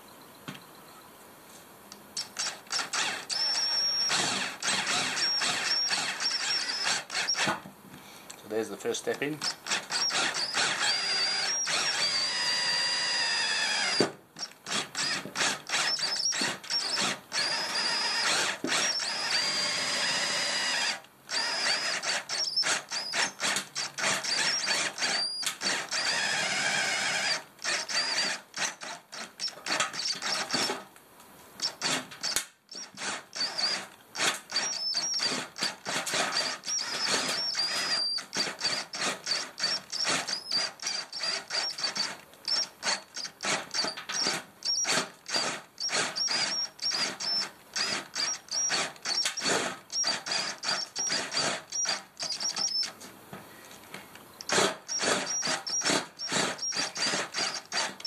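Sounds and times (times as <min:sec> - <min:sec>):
drill trigger stop-start pulses: 0:02.2 - 0:07.6, 0:09.4 - 0:30.8, 0:31.6 - 0:53.0, 0:54.4 - 0:58.0
cordless drill whining through metal: 0:02.2 - 0:07.7, 0:08.8 - 0:30.9, 0:31.6 - 0:53.1, 0:54.4 - 0:58.0.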